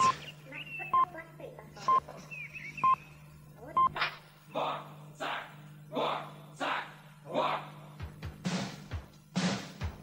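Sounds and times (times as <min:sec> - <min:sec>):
short electronic beeps: 0:00.0 - 0:01.1, 0:01.9 - 0:03.1
steady low hum: 0:00.0 - 0:10.0.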